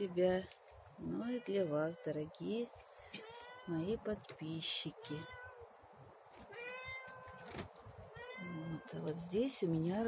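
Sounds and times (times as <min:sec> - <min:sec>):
cat meowing: 0:03.2 - 0:04.0, 0:04.9 - 0:05.7, 0:06.5 - 0:09.2.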